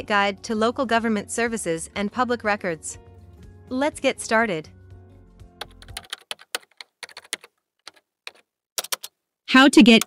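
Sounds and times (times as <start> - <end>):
background music: 0.0 - 6.7.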